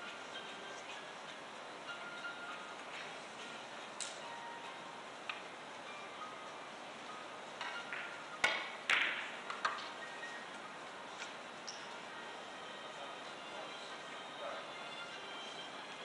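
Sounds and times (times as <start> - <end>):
billiard balls clicking: 7.6 - 10.0.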